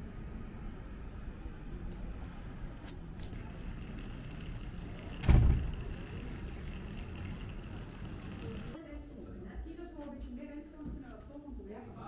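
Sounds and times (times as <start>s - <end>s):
low street rumble: 0.0s - 9.3s.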